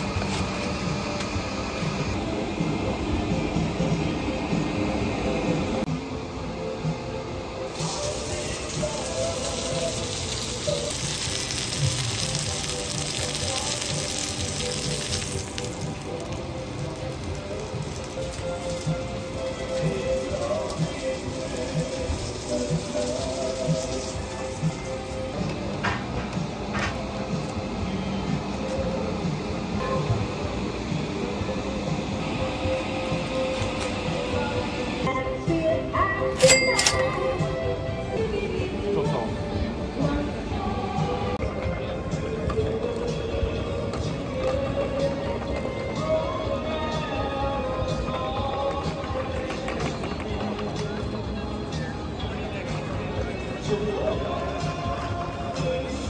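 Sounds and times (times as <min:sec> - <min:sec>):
meat sizzling on a grill: 0:00.0 - 0:01.0, 0:07.7 - 0:25.8, 0:31.7 - 0:34.6
background music: 0:00.0 - 0:56.0.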